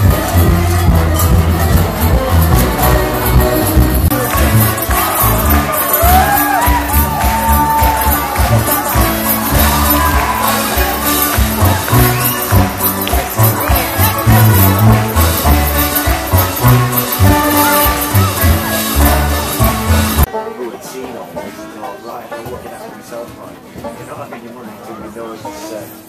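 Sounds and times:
live folk band music: 0:00.0 - 0:26.0
audience cheering and whooping: 0:04.8 - 0:12.6.

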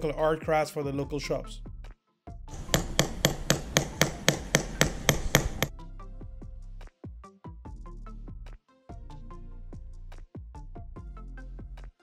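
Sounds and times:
small hammer tapping chisel into metal: 0:02.5 - 0:05.7.

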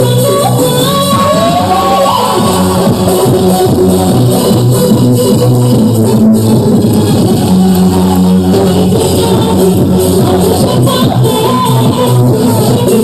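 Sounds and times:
bass line: 0:00.0 - 0:13.0
live band music: 0:00.0 - 0:13.0.

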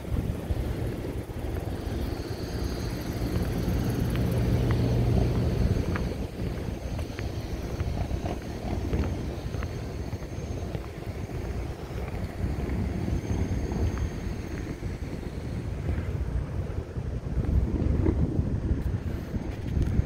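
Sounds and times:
wind buffeting microphone: 0:00.0 - 0:20.0
faint ticks: 0:01.4 - 0:14.8.

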